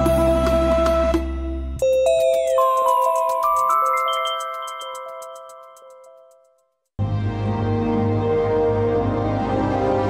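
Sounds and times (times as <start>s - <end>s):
bell-like chime notes: 1.8s - 6.8s
light fast ticking: 2.3s - 6.9s.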